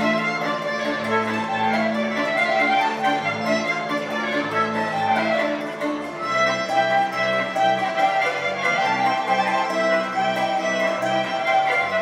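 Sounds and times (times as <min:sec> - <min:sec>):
fiddle playing a melody: 0:00.0 - 0:12.0
folk music accompaniment: 0:00.0 - 0:12.0.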